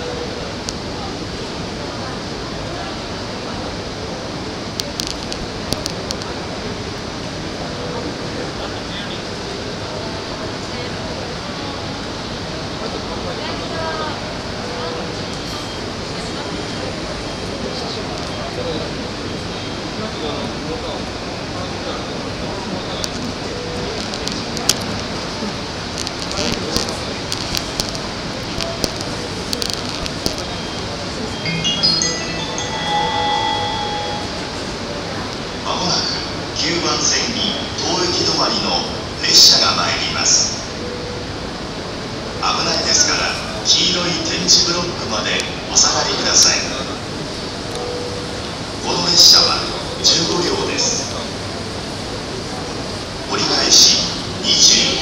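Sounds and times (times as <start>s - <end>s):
faint voices: 0.0s - 55.0s.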